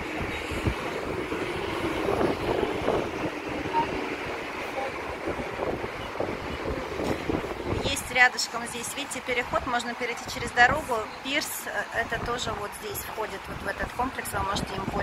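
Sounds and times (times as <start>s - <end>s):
wind on microphone: 0.0s - 8.3s, 11.9s - 15.0s
road traffic: 0.0s - 15.0s.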